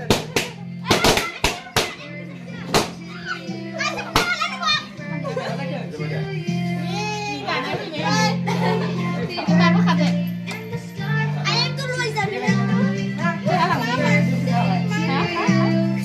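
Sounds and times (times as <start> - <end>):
hand claps: 0.0 - 2.0, 10.4 - 10.8
background music: 0.0 - 16.0
voices chattering and singing: 0.0 - 16.0.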